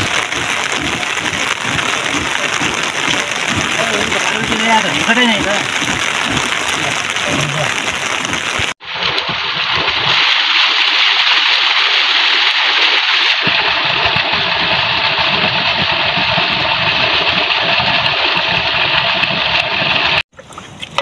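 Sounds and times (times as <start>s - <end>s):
low rumble: 0.0s - 8.8s
rainwater rushing over path: 0.0s - 20.2s.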